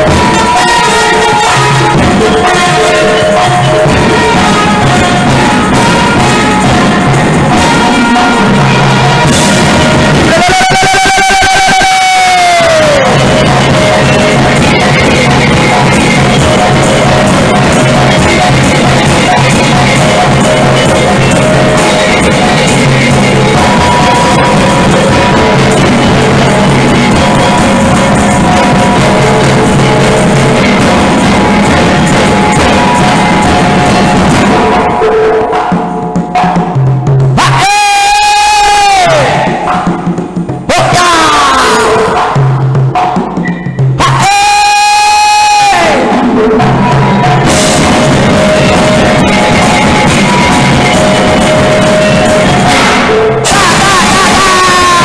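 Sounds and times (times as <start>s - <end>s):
bamboo percussion and drum: 0.0s - 55.0s
long shouted vocal note: 10.2s - 31.2s, 48.0s - 55.0s
singer's long shouted call: 10.3s - 14.4s, 52.9s - 55.0s.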